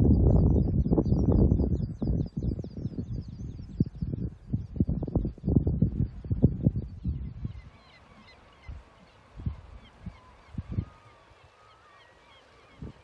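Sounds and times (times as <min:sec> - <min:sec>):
wind thumps on microphone: 0:00.0 - 0:07.7
seabirds calling: 0:05.2 - 0:13.0.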